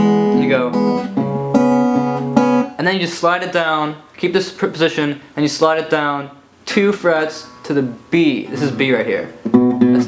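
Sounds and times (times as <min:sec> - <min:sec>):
acoustic guitar finger-picked: 0:00.0 - 0:02.8, 0:07.4 - 0:10.0
person speaking: 0:02.7 - 0:10.0.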